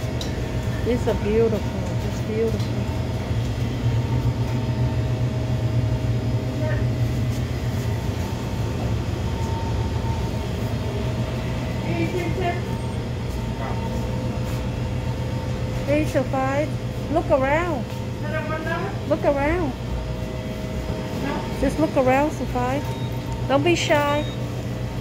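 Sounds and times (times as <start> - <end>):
distant voices: 0.0 - 25.0
shop background hum: 0.0 - 25.0.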